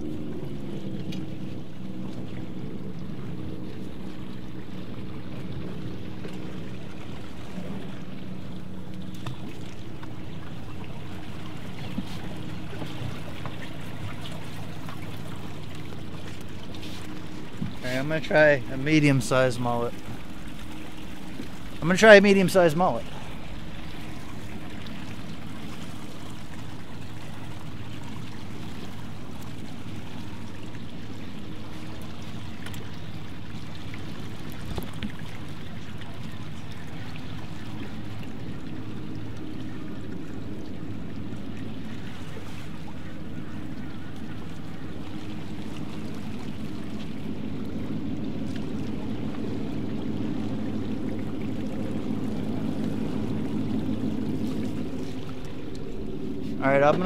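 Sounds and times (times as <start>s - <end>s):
boat engine humming: 0.0s - 57.0s
water sloshing against hull: 0.0s - 57.0s.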